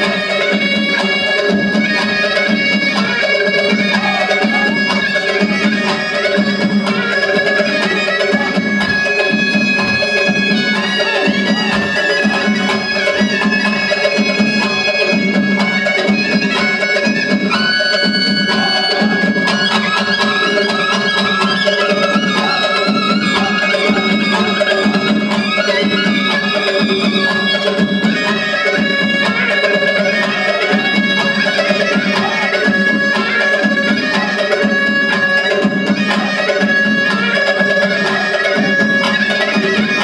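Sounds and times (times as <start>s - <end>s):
reedy wind melody: 0.0s - 40.0s.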